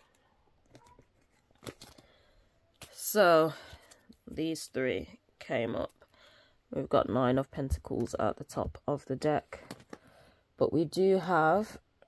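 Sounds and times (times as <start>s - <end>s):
paper cards rustling: 0.0s - 3.0s.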